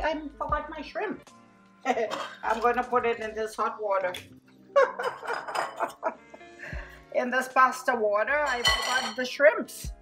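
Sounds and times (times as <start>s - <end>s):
soft background music: 0.0s - 10.0s
woman laughing: 4.7s - 6.4s.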